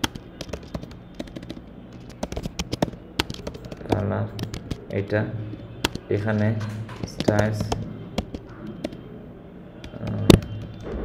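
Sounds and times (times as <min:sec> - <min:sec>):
keyboard typing clicks: 0:00.0 - 0:09.1, 0:09.8 - 0:10.9.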